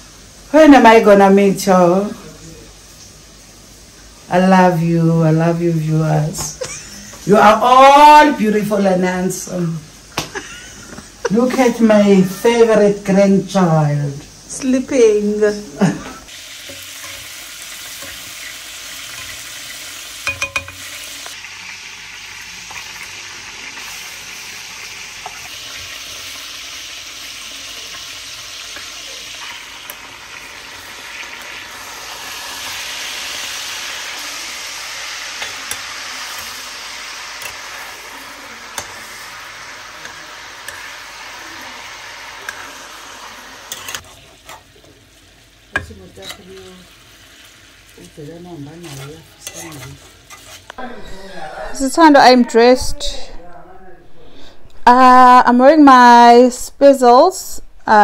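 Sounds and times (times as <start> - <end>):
food sizzling in a pan: 0.0 - 52.8
spatula scraping a pan: 16.3 - 21.4, 34.5 - 41.2, 43.6 - 44.8, 48.5 - 50.8.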